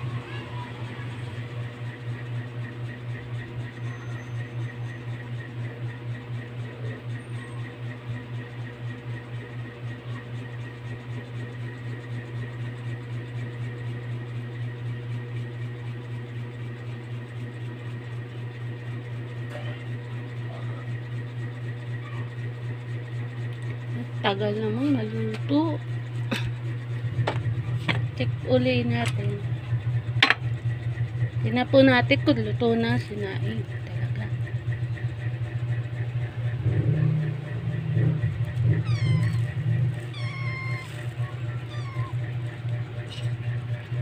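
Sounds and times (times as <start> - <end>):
steady low hum: 23.1 - 44.0.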